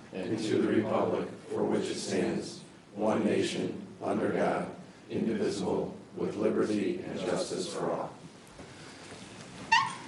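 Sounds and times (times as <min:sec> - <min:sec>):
low room noise: 0:00.0 - 0:10.0
office chair squeak: 0:09.6 - 0:10.0.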